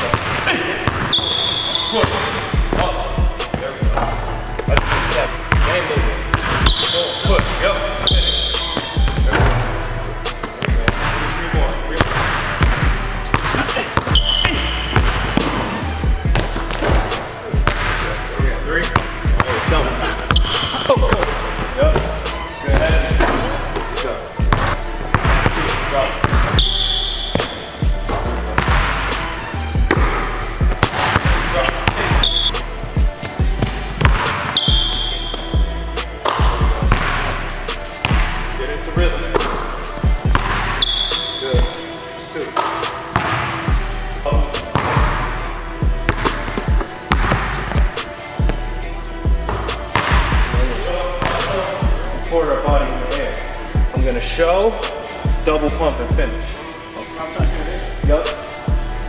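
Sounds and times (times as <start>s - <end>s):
background music with heavy bass: 2.3s - 59.0s
basketball bouncing on hardwood: 33.6s - 34.3s, 40.3s - 40.6s, 44.8s - 45.0s, 46.1s - 47.8s.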